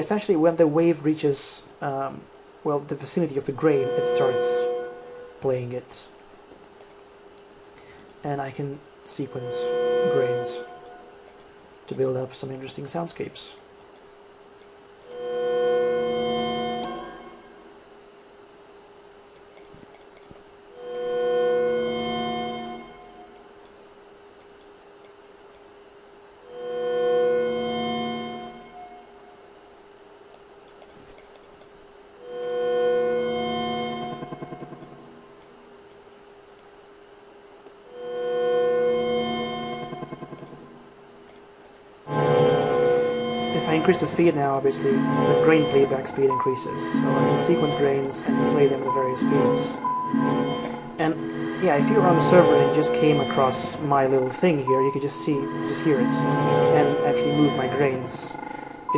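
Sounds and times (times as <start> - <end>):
faint steady tone: 1.9 - 5.8, 7.8 - 12.6
pitched granular synth tone: 3.3 - 5.4, 9.1 - 11.2, 37.9 - 40.8, 42.1 - 58.9.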